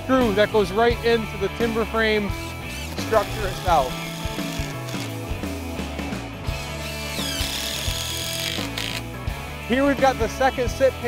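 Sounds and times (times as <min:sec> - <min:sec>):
background music: 0:00.0 - 0:11.0
power driver sinking screw: 0:02.7 - 0:05.2, 0:06.8 - 0:09.1.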